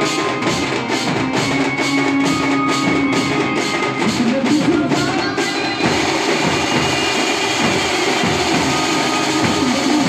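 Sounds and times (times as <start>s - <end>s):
band drums: 0.0s - 10.0s.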